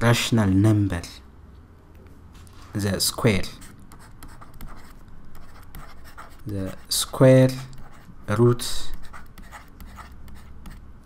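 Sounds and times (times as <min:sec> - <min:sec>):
stylus scratching on pen tablet: 0:03.5 - 0:10.9.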